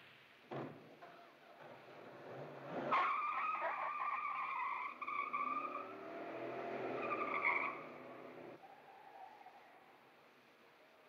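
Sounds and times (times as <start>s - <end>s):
car tyres squealing: 1.1s - 9.9s
car engine revving: 4.9s - 8.6s.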